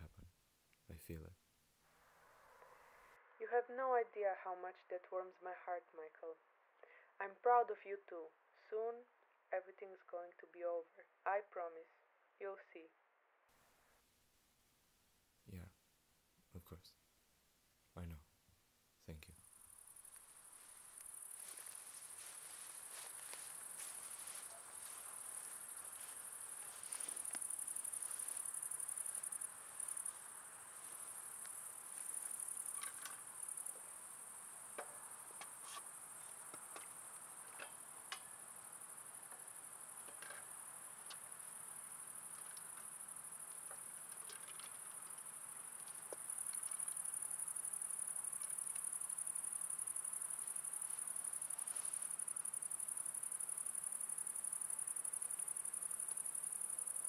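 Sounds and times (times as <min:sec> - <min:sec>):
crickets chirping: 0:19.4 - 0:57.0.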